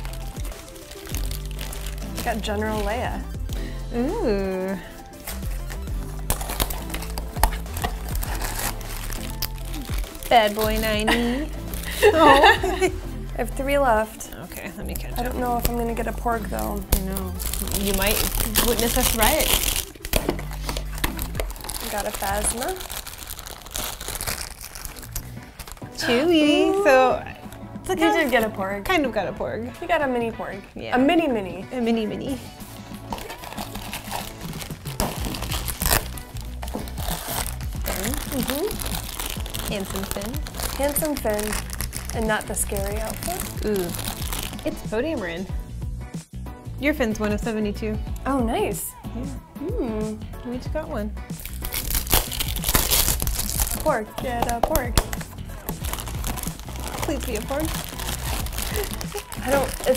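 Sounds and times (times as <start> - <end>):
foil bags tearing open: 0.0 - 3.3, 5.1 - 12.6, 15.0 - 26.8, 33.0 - 44.8, 51.4 - 59.9
foil packaging crinkling: 0.0 - 3.3, 4.7 - 12.9, 15.0 - 26.7, 33.0 - 44.8, 51.4 - 59.9.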